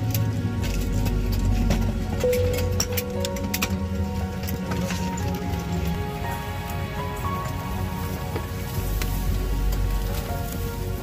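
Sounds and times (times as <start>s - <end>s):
ambient music with held tones: 0.0s - 11.0s
low rumble: 0.0s - 11.0s
steady hiss: 6.1s - 11.0s.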